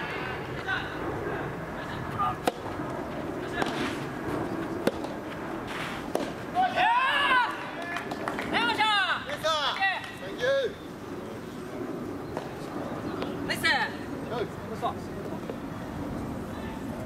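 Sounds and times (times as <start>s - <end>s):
racket hitting ball: 2.4s - 2.8s, 3.6s - 4.0s, 4.8s - 6.4s
players shouting: 6.5s - 10.8s.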